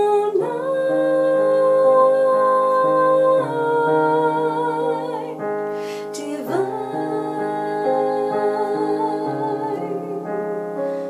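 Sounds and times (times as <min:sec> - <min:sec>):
woman singing: 0:00.0 - 0:10.4
piano accompaniment: 0:00.0 - 0:11.0.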